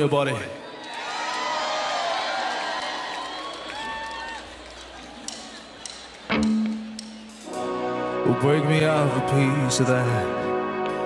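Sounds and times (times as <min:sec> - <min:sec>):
crowd cheering: 0:00.0 - 0:07.8.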